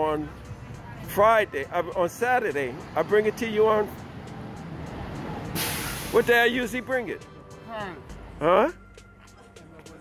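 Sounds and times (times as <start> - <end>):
street traffic rumble: 0.0 - 10.0
loud short hiss: 5.6 - 6.3.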